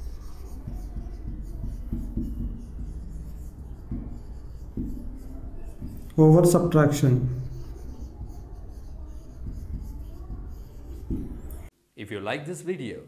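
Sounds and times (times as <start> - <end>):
faint low hum: 0.0 - 11.7
marker writing on whiteboard: 0.0 - 11.7.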